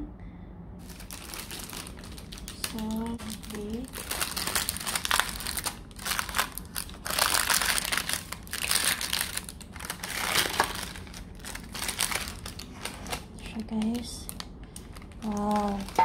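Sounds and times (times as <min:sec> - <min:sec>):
parchment paper crinkling: 0:00.8 - 0:16.0.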